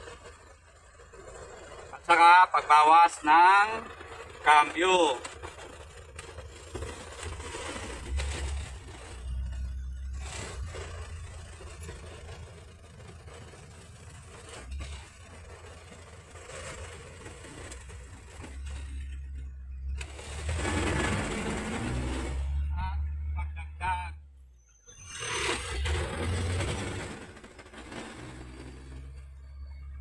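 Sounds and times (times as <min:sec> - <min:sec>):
truck engine running under load: 0:00.0 - 0:30.0.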